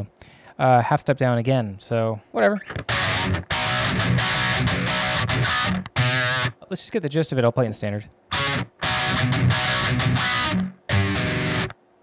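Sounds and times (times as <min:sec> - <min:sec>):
distorted electric guitar riff: 0:02.6 - 0:06.6, 0:08.3 - 0:11.8.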